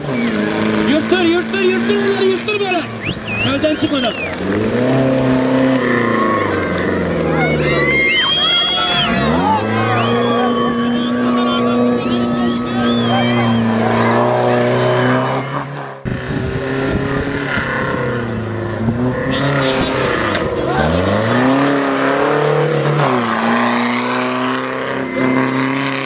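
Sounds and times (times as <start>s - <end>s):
crowd voices: 0.0s - 26.0s
engine revving hard: 0.0s - 26.0s.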